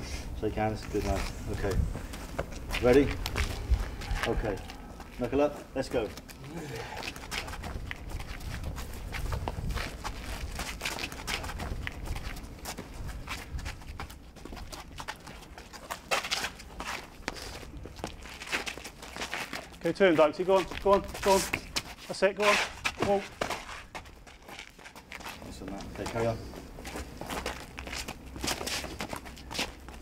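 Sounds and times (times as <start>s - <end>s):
footwork scuffing on ground: 0.6s - 30.0s.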